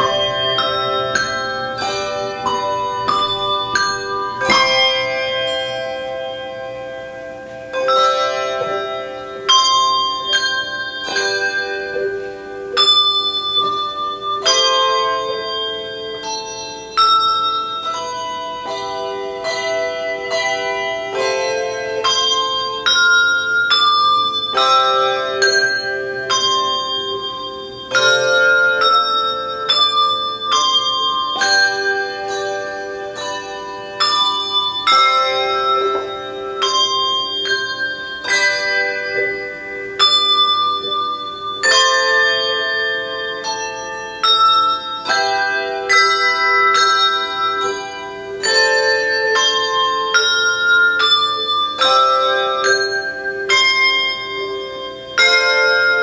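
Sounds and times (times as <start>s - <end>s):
slow bell melody: 0.0s - 56.0s.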